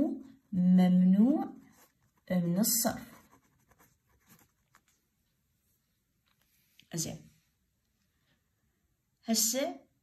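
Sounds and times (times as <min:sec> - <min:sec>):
pen scratching on paper: 0:01.6 - 0:04.9.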